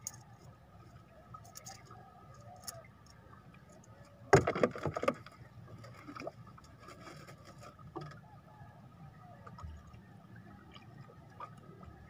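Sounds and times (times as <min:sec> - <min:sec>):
knocks and clatter in wooden boat: 0:04.0 - 0:08.4.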